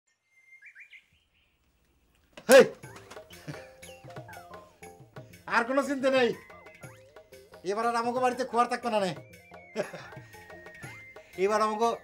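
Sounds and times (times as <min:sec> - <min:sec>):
bird chirping: 0:00.1 - 0:12.0.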